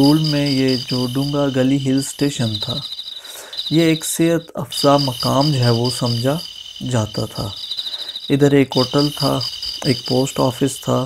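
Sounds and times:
man talking: 0.0s - 7.6s, 8.3s - 11.0s
insects chirring: 0.0s - 11.0s.

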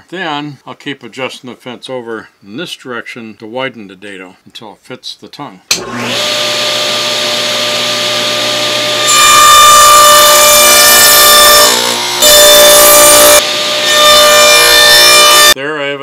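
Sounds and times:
table saw cutting wood: 5.7s - 15.6s
table saw running: 5.7s - 15.6s.

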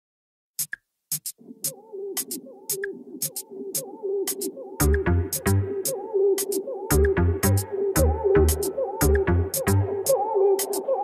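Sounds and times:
synth tone with bending pitch: 4.8s - 6.3s, 6.9s - 10.7s.

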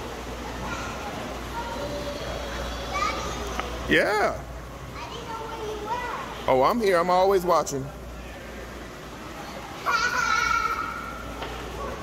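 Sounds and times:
chatter of voices: 0.0s - 6.6s, 7.8s - 12.0s.

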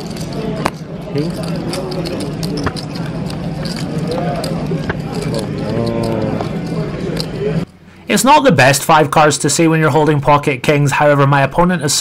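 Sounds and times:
low steady hum: 0.0s - 11.8s
background voices: 1.1s - 8.2s
drawn-out vocal sound: 4.0s - 8.2s.

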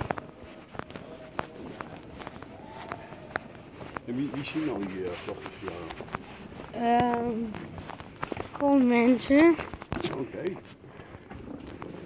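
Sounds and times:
footsteps on brick paving: 0.0s - 12.0s.

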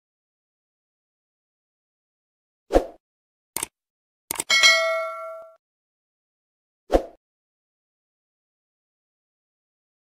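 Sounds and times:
notification bell ding: 4.5s - 5.6s.

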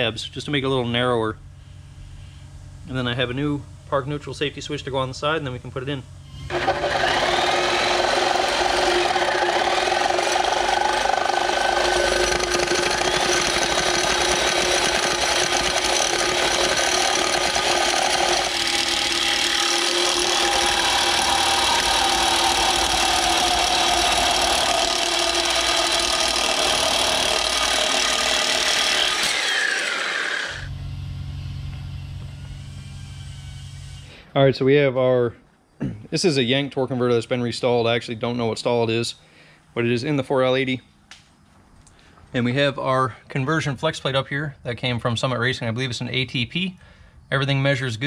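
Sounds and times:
low hum: 6.0s - 29.4s, 30.0s - 34.2s
reciprocating saw cutting metal: 6.4s - 30.7s.

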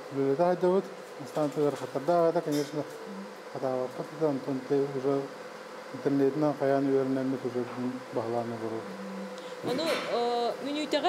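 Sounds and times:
faint steady hum: 0.0s - 11.0s
man talking: 3.5s - 8.9s.

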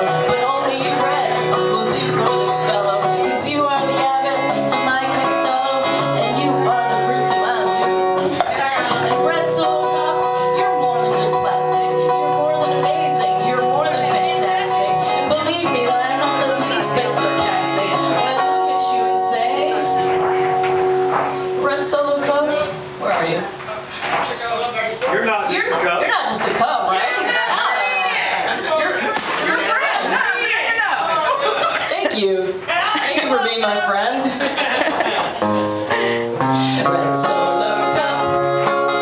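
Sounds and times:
people talking: 0.0s - 20.7s, 21.6s - 35.4s, 36.0s - 38.7s
acoustic guitar strumming: 0.0s - 27.9s, 35.0s - 39.0s.

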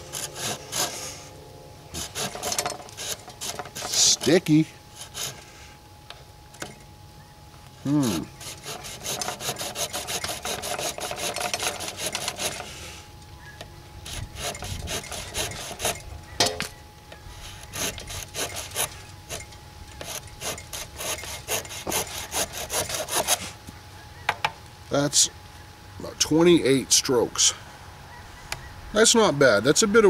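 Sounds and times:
folding saw cutting branch: 0.0s - 1.3s, 1.9s - 5.8s, 7.8s - 13.1s, 14.0s - 23.6s.

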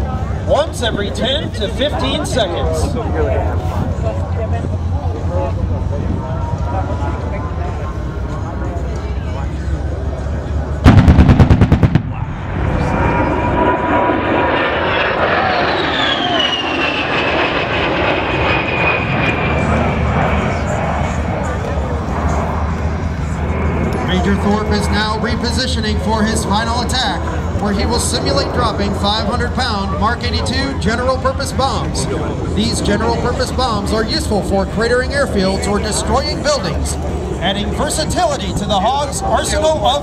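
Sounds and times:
jet engines whining overhead: 0.0s - 40.0s
cannon fire burst: 10.8s - 12.3s.

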